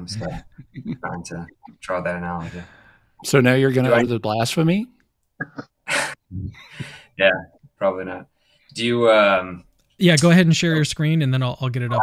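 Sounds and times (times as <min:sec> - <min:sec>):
men laughing: 0:00.1 - 0:01.4.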